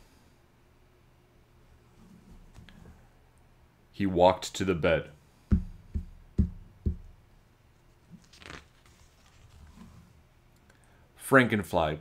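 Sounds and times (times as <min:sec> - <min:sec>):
book page turning: 0:08.1 - 0:10.0.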